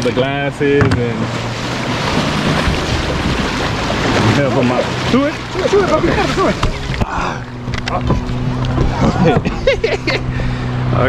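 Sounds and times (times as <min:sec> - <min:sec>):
wind buffeting microphone: 0:00.0 - 0:10.8
surf washing and breaking: 0:00.0 - 0:11.0.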